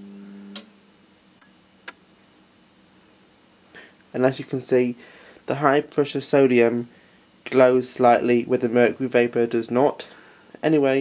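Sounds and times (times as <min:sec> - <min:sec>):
lamp ballast mains hum: 0:00.0 - 0:11.0.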